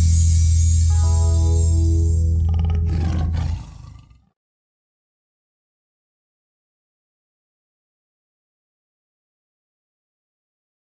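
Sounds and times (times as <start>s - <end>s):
held bass note: 0.0s - 3.4s
roar-like sound: 2.3s - 4.4s.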